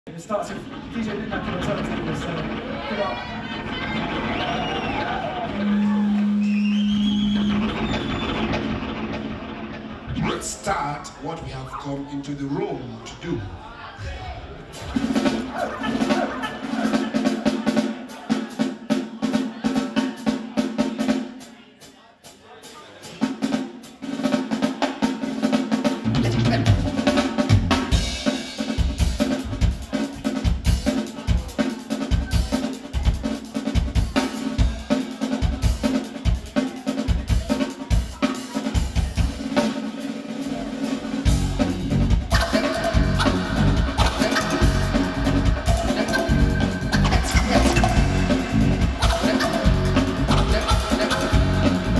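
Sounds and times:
live band music: 0.2 - 13.6, 14.6 - 51.9
drum groove with snare: 14.7 - 51.9
low pulsing beat: 41.3 - 51.9.

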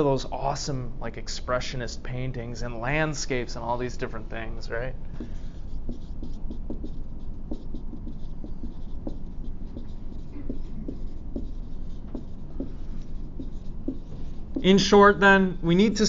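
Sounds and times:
pen scratching on paper: 5.2 - 14.8.

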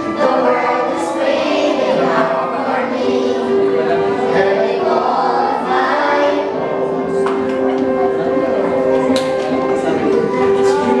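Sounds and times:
children singing in chorus: 0.0 - 7.2.

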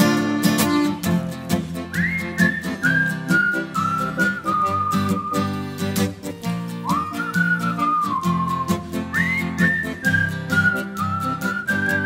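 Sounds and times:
rhythmic chord accompaniment: 0.0 - 12.0
person whistling a tune: 1.8 - 12.0.

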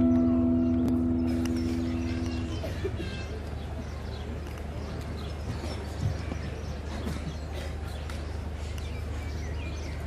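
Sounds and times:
guitar chord ringing: 0.0 - 2.5.

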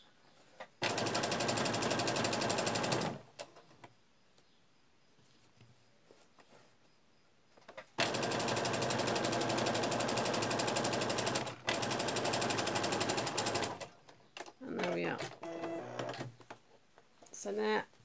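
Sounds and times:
electric sewing machine stitching: 0.8 - 3.3, 8.0 - 13.9, 14.8 - 16.3.

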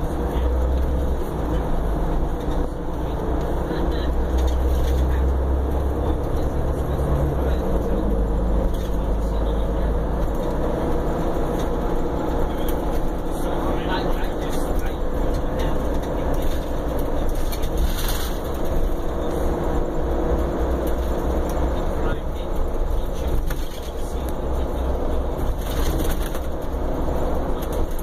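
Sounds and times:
engine and road rumble in bus: 0.0 - 28.0.

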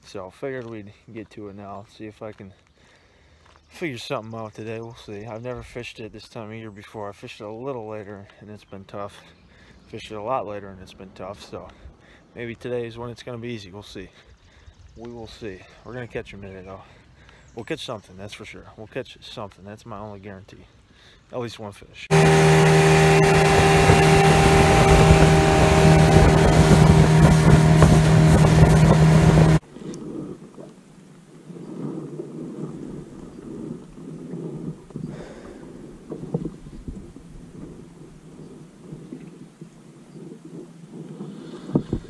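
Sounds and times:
engine running: 22.1 - 29.6
wind rush: 22.1 - 30.6
water: 22.1 - 42.0.

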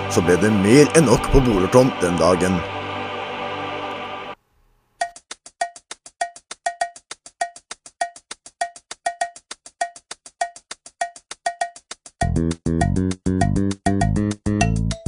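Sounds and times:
fast clicking percussion: 5.0 - 15.0.

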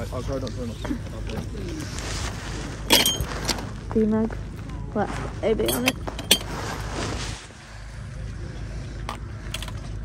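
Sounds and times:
steady low rumble: 0.0 - 10.0
china cups and plates clinking: 2.9 - 3.3, 5.6 - 6.5.

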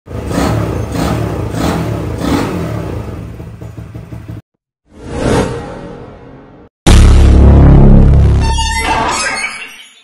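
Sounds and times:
motorcycle engine revving: 0.1 - 4.4.

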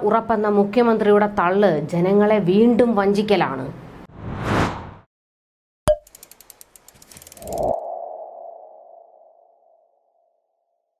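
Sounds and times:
sharp ratchet-like ticks: 6.0 - 7.8.

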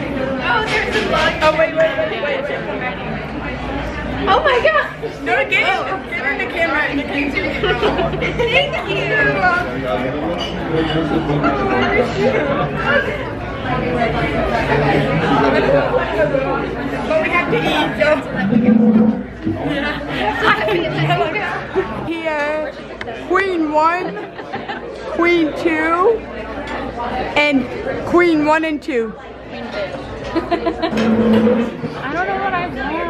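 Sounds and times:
background chatter: 0.0 - 33.0
women talking and exclaiming: 4.2 - 9.7, 19.7 - 24.3, 25.2 - 26.2, 27.4 - 29.2.

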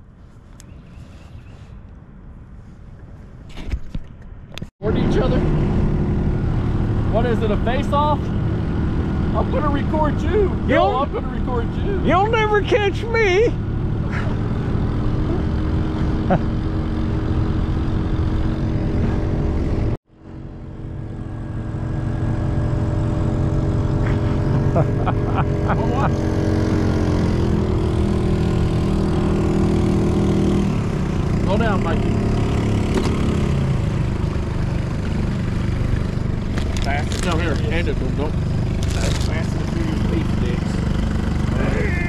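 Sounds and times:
boat motor running: 4.8 - 42.0.

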